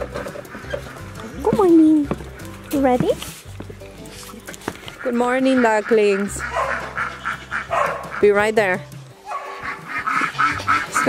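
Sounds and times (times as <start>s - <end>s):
ducks quacking: 0.0s - 1.6s, 4.3s - 11.0s.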